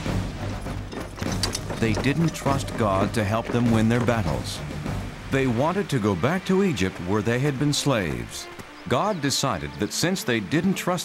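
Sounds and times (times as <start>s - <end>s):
narration: 1.0s - 11.0s.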